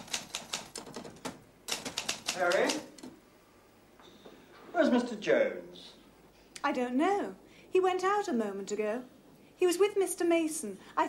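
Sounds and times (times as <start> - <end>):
typewriter keystrokes: 0.0 - 3.1.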